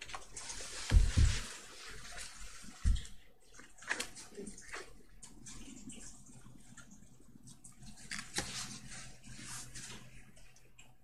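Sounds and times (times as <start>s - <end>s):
faint room noise: 0.0s - 11.0s.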